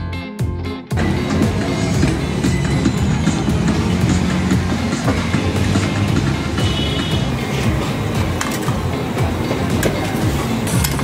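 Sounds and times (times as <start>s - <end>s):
music: 0.0s - 11.0s
low crowd rumble: 1.0s - 11.0s.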